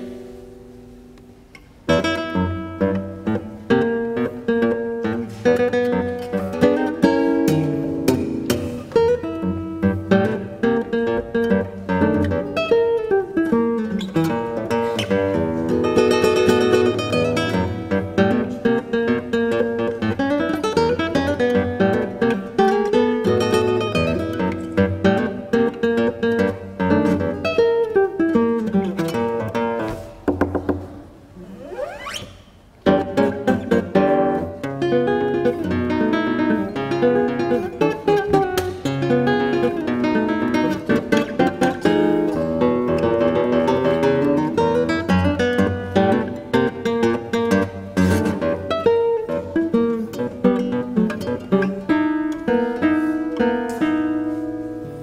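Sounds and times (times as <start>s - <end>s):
fingerpicked classical guitar: 0.0s - 55.0s.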